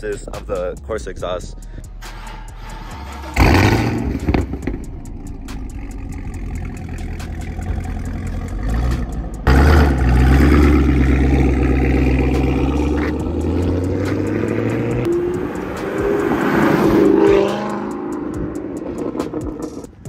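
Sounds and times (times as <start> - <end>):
car engine idling: 3.2 - 20.0
deep exhaust drone: 3.4 - 19.8.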